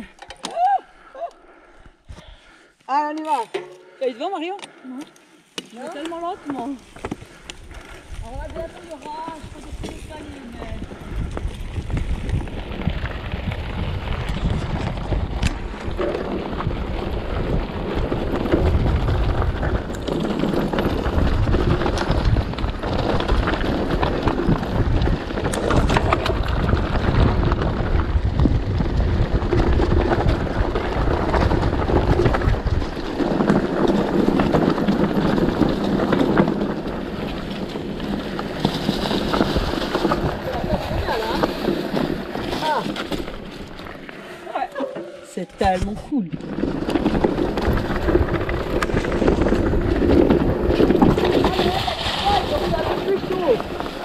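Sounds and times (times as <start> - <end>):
bike rattling: 5.4 - 54.0
tyres rolling over loose stones: 5.5 - 54.0
wind buffeting microphone: 6.1 - 44.1, 45.6 - 54.0
heavy rumble: 7.2 - 54.0.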